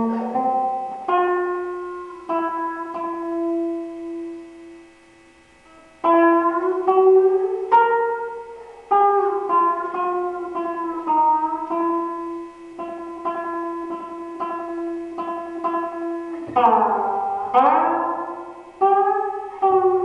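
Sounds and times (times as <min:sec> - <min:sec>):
guitar plucked notes over drone: 0:00.0 - 0:20.0
loud strummed guitar chords: 0:00.0 - 0:20.0.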